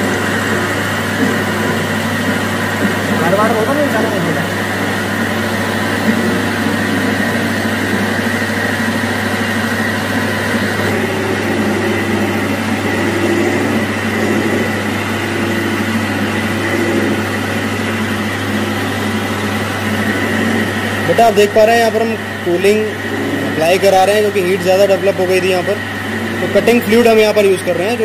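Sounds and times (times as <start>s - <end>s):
lathe machine hum: 0.0s - 28.0s.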